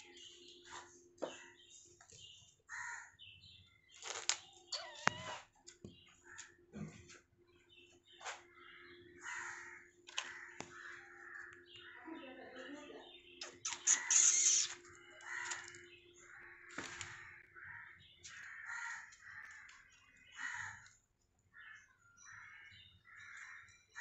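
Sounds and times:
harsh bird calls: 2.7s - 6.7s, 7.8s - 24.0s.

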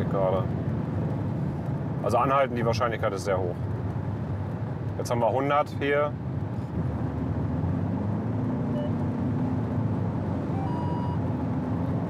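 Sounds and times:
car road and tyre noise: 0.0s - 12.0s
faint engine hum: 0.0s - 12.0s.

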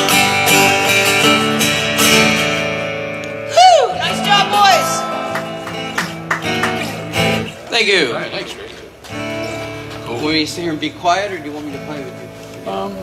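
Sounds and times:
acoustic guitars strumming: 0.0s - 13.0s.

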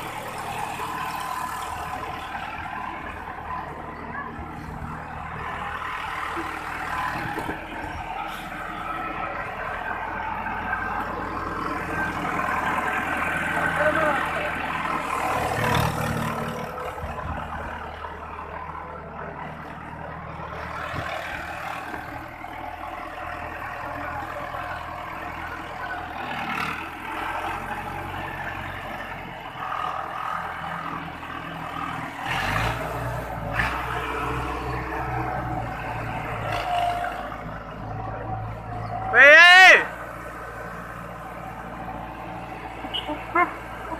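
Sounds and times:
tractor diesel engine running: 0.0s - 43.9s.

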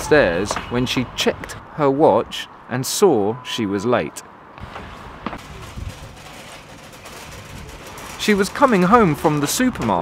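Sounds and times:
shopping trolley rolling over tarmac: 4.9s - 10.0s.

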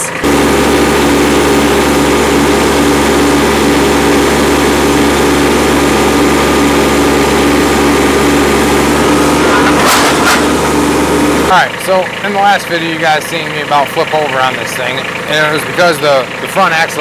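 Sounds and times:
tractor diesel engine running: 0.0s - 17.0s.

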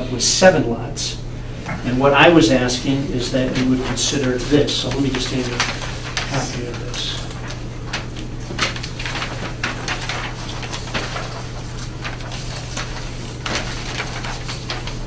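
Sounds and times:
steady low hum: 0.0s - 15.0s
paper sheets rustling: 1.7s - 15.0s.

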